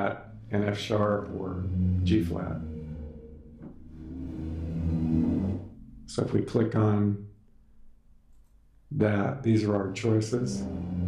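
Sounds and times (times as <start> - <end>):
low orchestral swell: 0.0 - 7.2, 9.2 - 11.0.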